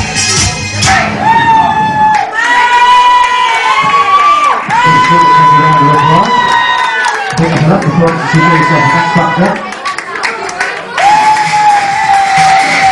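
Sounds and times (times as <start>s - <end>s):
crowd cheering and shouting: 0.0s - 12.9s.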